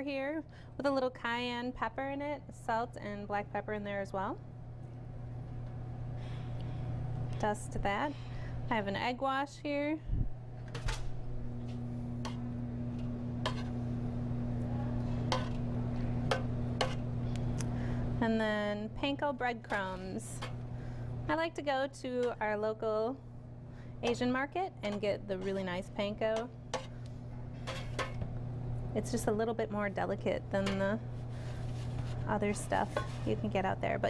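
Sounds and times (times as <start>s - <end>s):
steady low hum: 0.0s - 34.0s
metal tongs scraping a pan: 13.4s - 13.8s.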